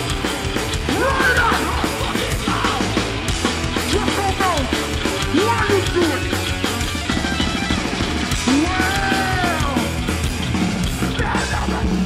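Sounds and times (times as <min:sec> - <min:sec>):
distorted electric guitars: 0:00.0 - 0:12.0
drums: 0:00.0 - 0:12.0
person yelling vocals: 0:00.9 - 0:03.0, 0:08.5 - 0:09.9, 0:11.1 - 0:12.0.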